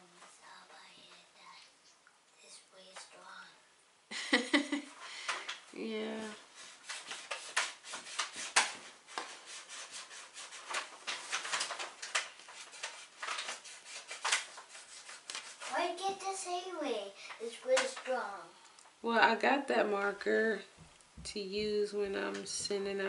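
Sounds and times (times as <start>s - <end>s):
child's voice: 0.0s - 1.8s, 2.4s - 3.7s, 15.7s - 18.6s.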